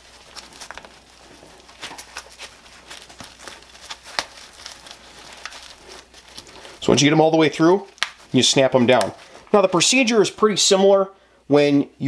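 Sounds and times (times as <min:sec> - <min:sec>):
nylon fabric rustling and scraping: 0:00.0 - 0:10.1.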